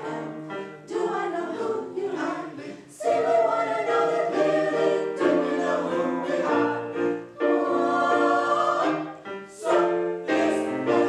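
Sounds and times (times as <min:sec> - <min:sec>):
mixed choir singing in harmony: 0:00.0 - 0:11.0.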